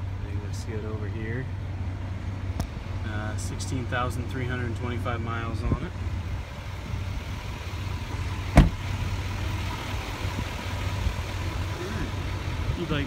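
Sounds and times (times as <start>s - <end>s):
truck engine idling: 0.0s - 13.0s
car door shutting: 8.5s - 9.0s.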